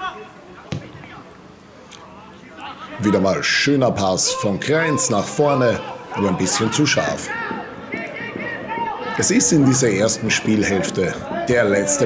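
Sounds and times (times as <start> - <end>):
faint shouts of players: 0.0 - 1.4, 2.0 - 12.0
football being kicked: 0.7 - 1.2.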